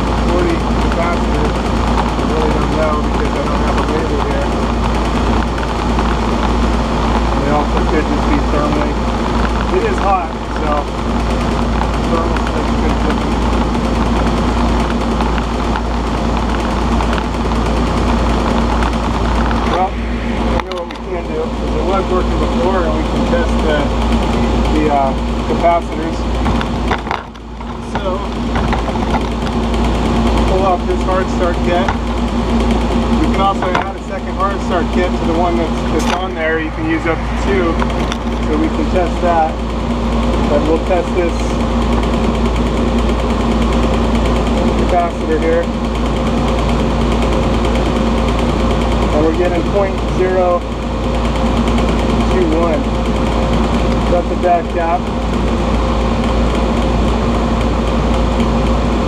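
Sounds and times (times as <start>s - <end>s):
low machine hum: 0.0s - 59.0s.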